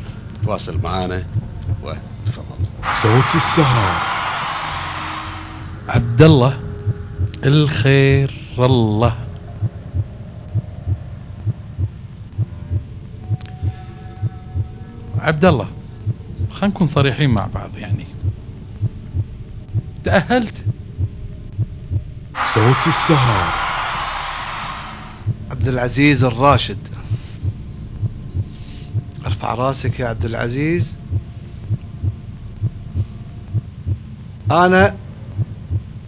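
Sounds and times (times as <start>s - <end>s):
soft heartbeat-like thumps: 0.0s - 3.8s, 9.5s - 14.8s, 15.4s - 17.0s, 17.8s - 22.8s, 25.2s - 25.8s, 27.0s - 36.0s
pulsing suspense music: 0.0s - 36.0s.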